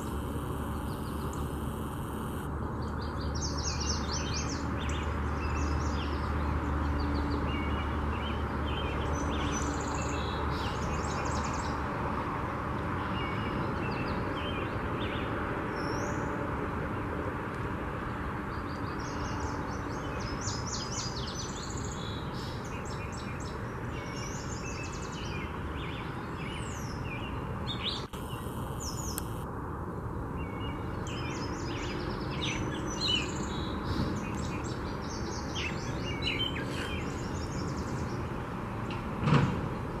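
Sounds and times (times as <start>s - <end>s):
low background hum: 0.0s - 3.3s
songbirds chirping and trilling: 0.0s - 29.5s, 30.1s - 40.0s
thump: 39.2s - 39.7s.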